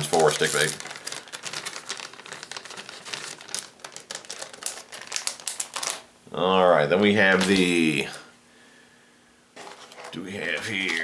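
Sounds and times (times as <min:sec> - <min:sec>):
plastic packaging crinkling: 0:00.0 - 0:06.1, 0:07.2 - 0:08.2, 0:09.6 - 0:11.0.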